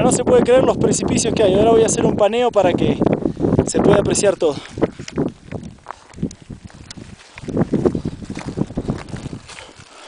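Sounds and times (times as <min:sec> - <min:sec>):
wind buffeting microphone: 0:00.0 - 0:10.0
microphone handling noise: 0:01.0 - 0:09.8.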